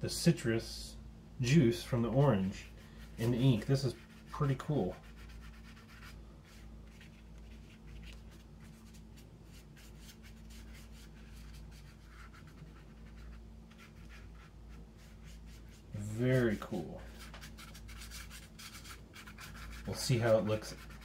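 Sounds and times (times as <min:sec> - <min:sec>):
paintbrush scrubbing on paper: 0:02.4 - 0:21.0.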